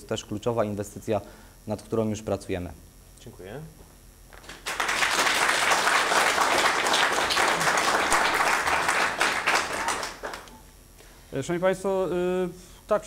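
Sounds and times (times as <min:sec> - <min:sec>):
audience applauding: 0:04.4 - 0:10.5.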